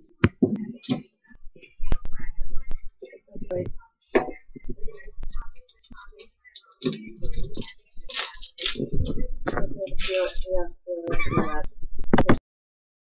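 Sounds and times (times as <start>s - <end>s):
indistinct talking: 0.0s - 12.4s.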